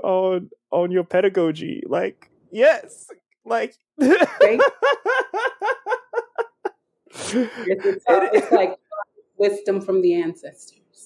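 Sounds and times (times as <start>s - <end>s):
person laughing: 4.0s - 8.8s.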